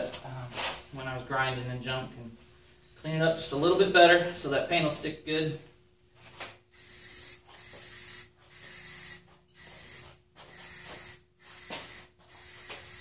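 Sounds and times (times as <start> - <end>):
aerosol spray can hissing: 6.8 - 13.0.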